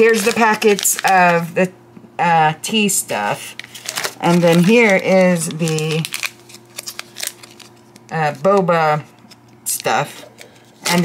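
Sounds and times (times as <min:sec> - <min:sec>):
plastic packets crinkling: 0:00.0 - 0:01.5, 0:03.4 - 0:08.6.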